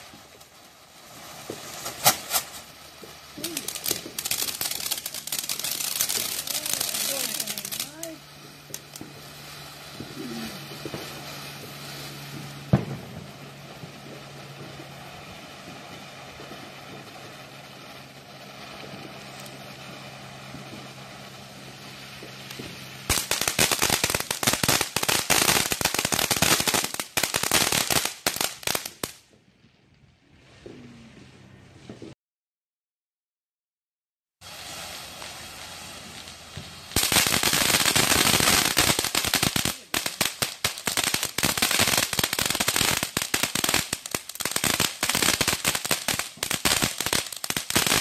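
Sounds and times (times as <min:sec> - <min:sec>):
firecrackers crackling: 0:00.0 - 0:32.2, 0:34.4 - 0:48.0
firework bang: 0:01.1 - 0:29.5.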